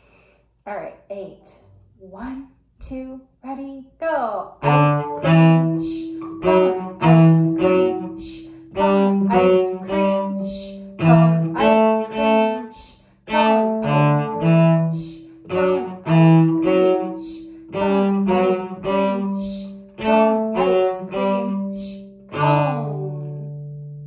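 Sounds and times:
cello bowing rhythmic notes: 4.6s - 24.0s.

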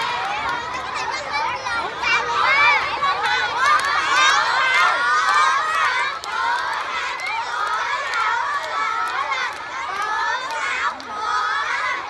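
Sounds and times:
children shouting and cheering: 0.0s - 12.0s.

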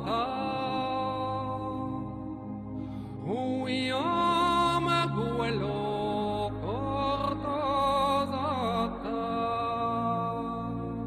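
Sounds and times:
slow wordless melody: 0.0s - 11.0s.

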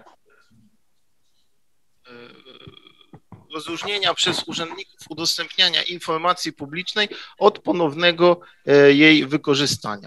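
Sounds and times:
man's drawn-out hesitation sound: 2.1s - 10.0s.

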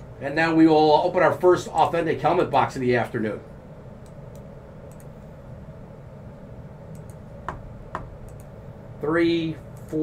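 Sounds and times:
low room hum: 0.0s - 10.0s
computer mouse click: 4.0s - 5.2s, 6.9s - 7.2s, 8.2s - 8.6s.

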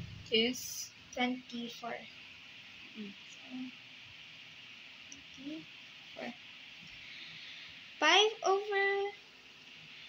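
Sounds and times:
faint room noise hiss: 0.0s - 10.0s.

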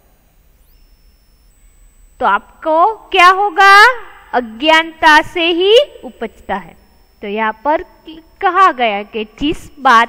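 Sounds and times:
background hiss: 0.0s - 10.0s.

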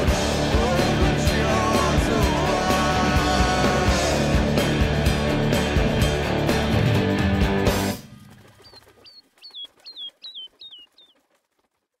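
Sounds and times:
short bird chirps: 8.4s - 11.2s.

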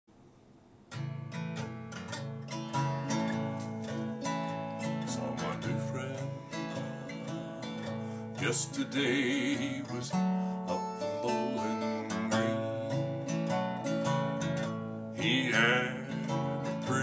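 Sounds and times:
acoustic guitar strumming: 0.9s - 17.0s.

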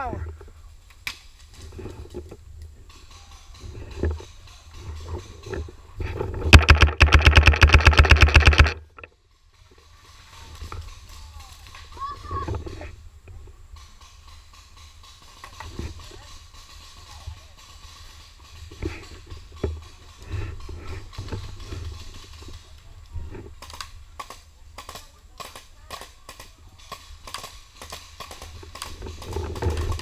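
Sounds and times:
paintball marker rapid firing: 6.5s - 8.8s.

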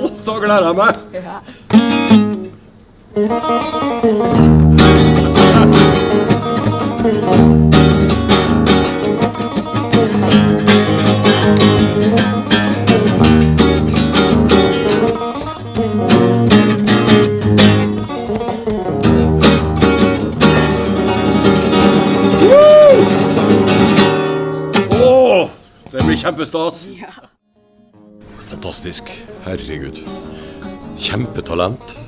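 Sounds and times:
electric guitar: 1.6s - 25.3s, 30.0s - 32.0s
acoustic guitar strumming: 1.7s - 26.4s, 27.5s - 32.0s.

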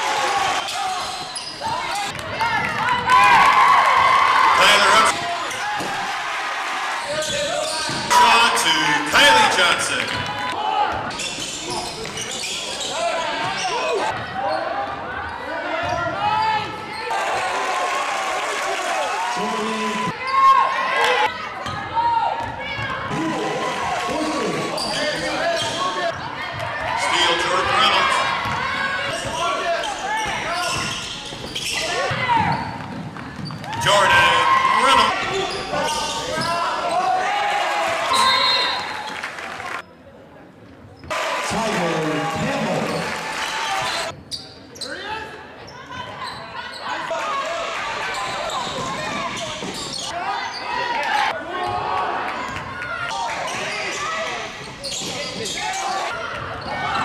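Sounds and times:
shoe squeaks: 0.6s - 2.1s, 11.1s - 14.7s, 24.7s - 26.1s, 29.1s - 32.8s, 35.3s - 37.1s, 44.1s - 47.0s, 48.1s - 50.8s, 53.5s - 57.0s
basketball bouncing on court: 21.6s - 23.0s, 27.6s - 29.4s, 30.2s - 33.9s.

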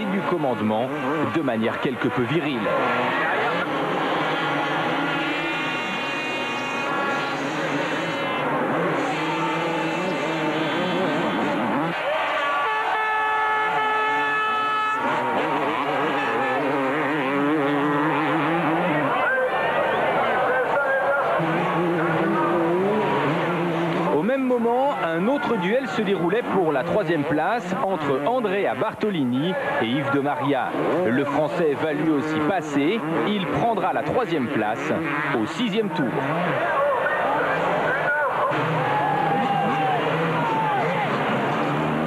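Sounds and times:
motocross bike engines revving: 0.0s - 42.0s.

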